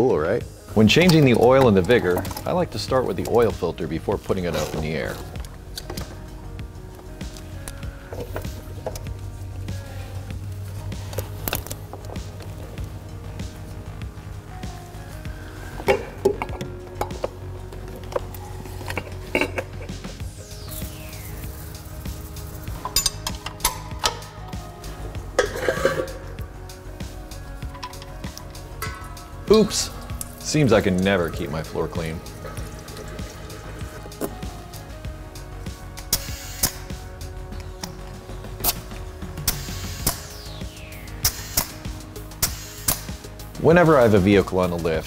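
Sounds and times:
background music: 0.0s - 45.0s.

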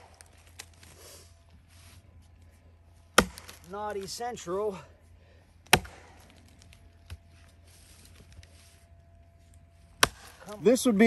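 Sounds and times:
axe chopping into log: 3.1s - 4.1s, 5.6s - 6.3s, 10.0s - 10.4s.

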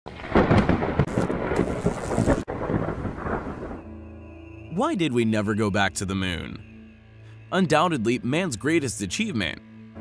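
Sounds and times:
rain: 0.1s - 3.9s
thunder rumbling: 0.1s - 4.1s
soft music: 3.7s - 10.0s.

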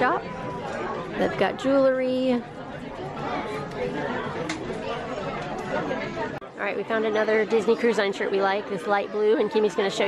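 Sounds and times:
chatter of people talking: 0.0s - 10.0s.

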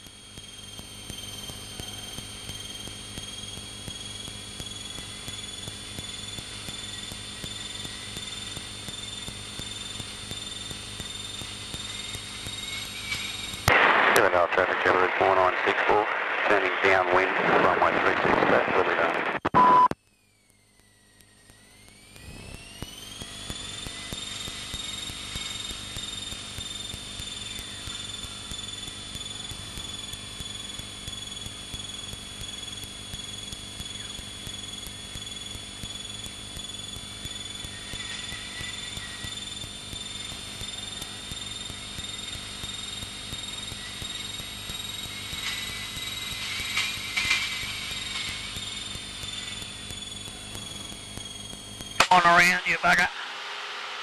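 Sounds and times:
light aircraft engine drone: 0.0s - 19.4s, 20.0s - 54.0s.

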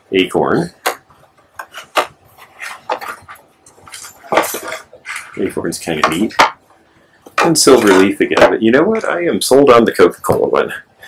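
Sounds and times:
boards knocking and clacking: 6.0s - 6.6s.

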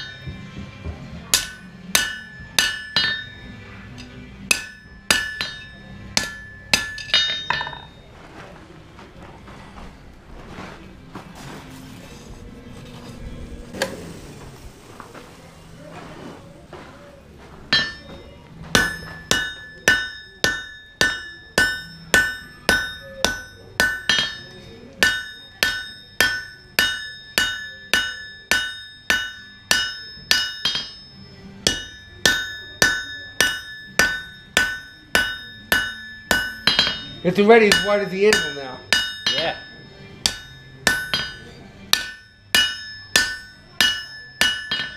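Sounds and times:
hammer striking steel on anvil: 0.0s - 0.6s, 1.2s - 8.1s, 17.7s - 44.9s.

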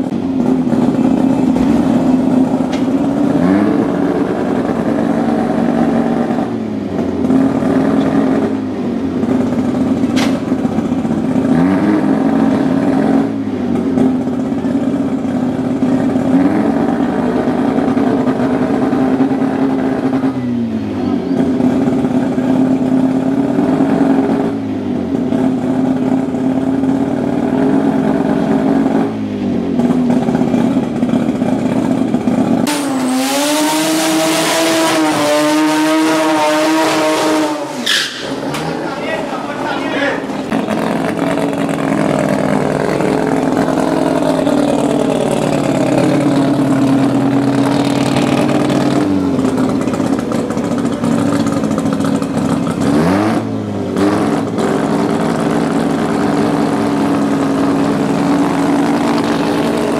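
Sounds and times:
turbocharged rotary engine running: 0.0s - 59.9s.

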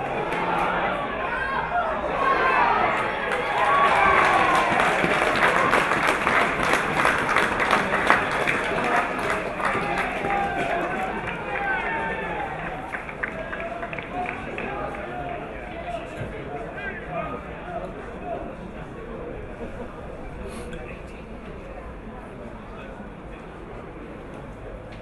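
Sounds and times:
crowd voices calling out: 0.0s - 20.9s.

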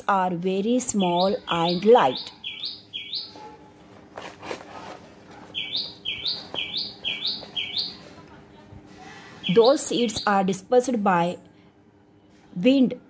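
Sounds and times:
small bird chirping: 0.8s - 3.6s, 5.5s - 8.0s.

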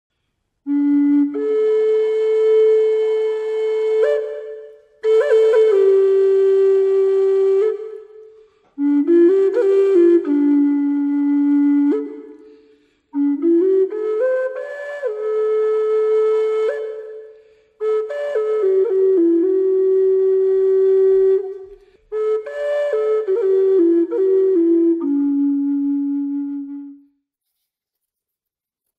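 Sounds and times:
flute long held note: 0.7s - 27.2s.

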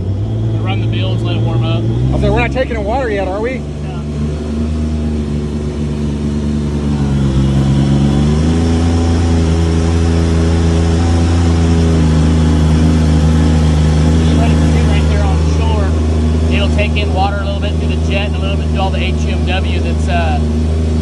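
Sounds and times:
jet boat engine: 0.0s - 21.0s.

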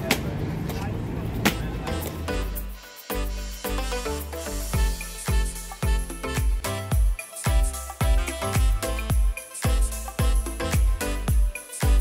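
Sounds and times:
passing traffic: 0.0s - 2.8s
background music: 1.5s - 12.0s.

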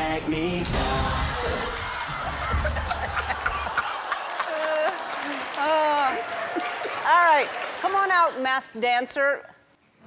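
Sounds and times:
music: 0.0s - 2.6s
people laughing and chuckling: 1.9s - 7.2s.

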